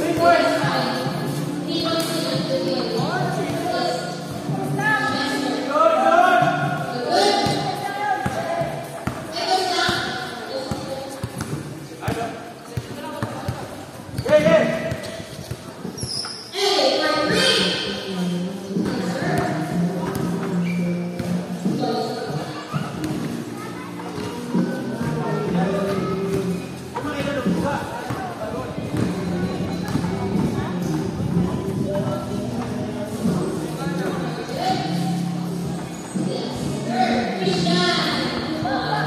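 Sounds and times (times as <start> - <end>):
players shouting and chattering: 0.0 - 39.0
basketball bouncing on concrete: 7.4 - 16.0, 27.1 - 30.6.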